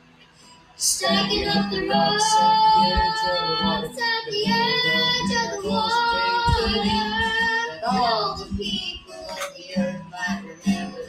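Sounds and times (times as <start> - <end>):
strummed acoustic guitar: 0.0 - 11.0
girl singing: 0.8 - 11.0.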